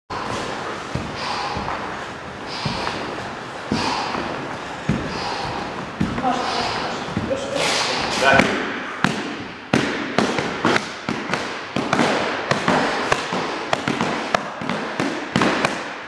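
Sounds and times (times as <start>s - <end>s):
breathy exhalations: 0.1s - 11.0s
bare feet thudding on wooden floor: 0.1s - 15.7s.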